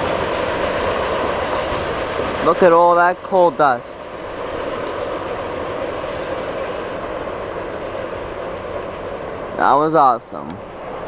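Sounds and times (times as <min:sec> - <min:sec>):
train wheels rumbling on track: 0:00.0 - 0:11.0.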